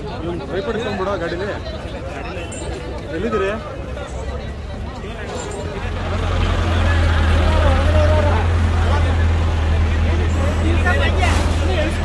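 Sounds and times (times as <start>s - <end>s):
people's voices: 0.0s - 12.0s
crane diesel engine humming: 5.4s - 12.0s.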